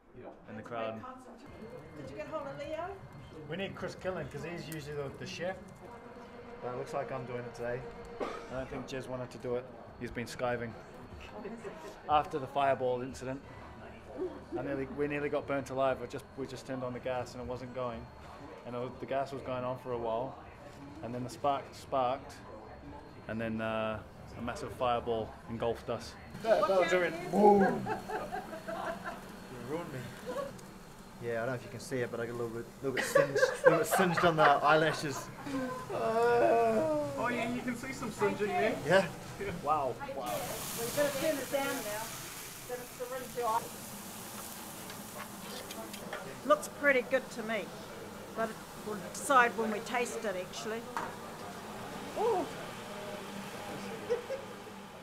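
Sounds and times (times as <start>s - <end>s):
faint indistinct voices: 0.0s - 55.0s
steady low hum: 22.8s - 55.0s.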